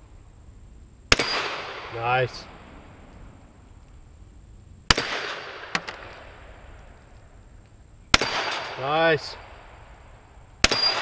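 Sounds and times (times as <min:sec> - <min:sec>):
pistol shots with echo: 0:01.1 - 0:02.2, 0:04.9 - 0:06.5, 0:08.1 - 0:09.8, 0:10.6 - 0:11.0.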